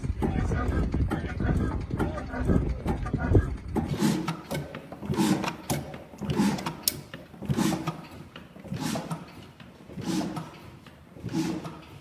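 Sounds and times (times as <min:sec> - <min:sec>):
diesel engine rhythmic clatter: 0:00.0 - 0:12.0.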